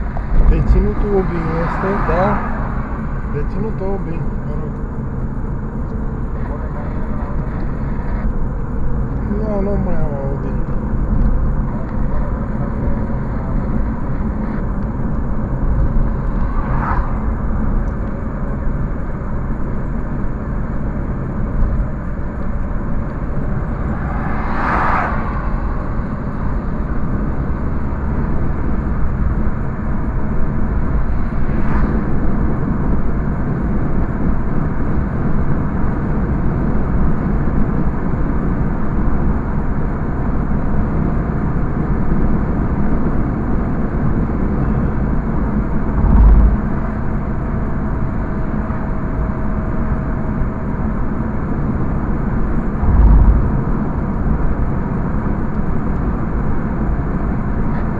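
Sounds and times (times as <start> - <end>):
car road and engine noise: 0.0 - 57.9
low thump: 52.8 - 53.6.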